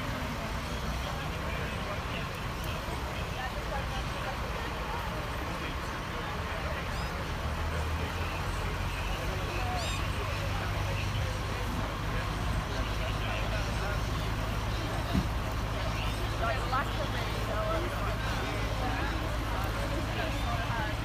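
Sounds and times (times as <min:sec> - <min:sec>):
passing traffic: 0:00.0 - 0:21.0
people talking: 0:00.0 - 0:21.0
vehicle engines idling: 0:00.0 - 0:21.0.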